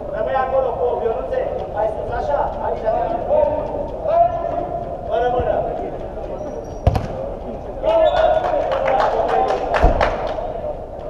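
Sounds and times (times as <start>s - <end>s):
football kick thud: 6.8s - 7.2s.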